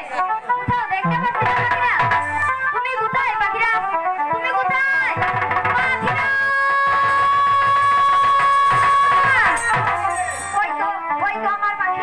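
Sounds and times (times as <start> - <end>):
faint percussion: 0.0 - 10.8.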